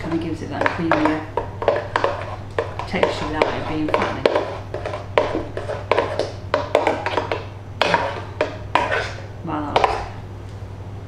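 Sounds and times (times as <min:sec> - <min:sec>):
spoon scraping a metal jug: 0:00.0 - 0:10.2.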